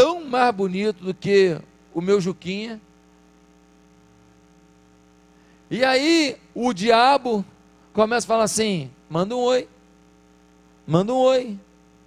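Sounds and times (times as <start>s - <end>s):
faint electrical mains hum: 0.0s - 12.0s.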